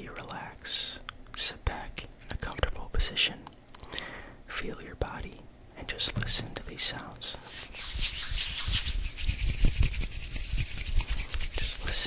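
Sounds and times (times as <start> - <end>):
hands rubbing together: 7.4 - 12.0.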